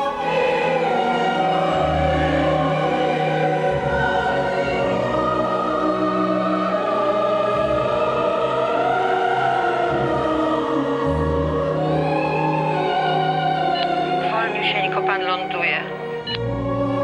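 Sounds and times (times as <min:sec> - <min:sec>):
low orchestral notes: 0:00.0 - 0:17.0
opera voices singing: 0:00.0 - 0:17.0.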